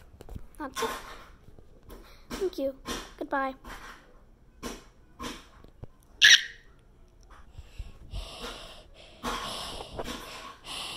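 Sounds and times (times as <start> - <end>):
breath puffs on microphone: 7.4 - 10.9.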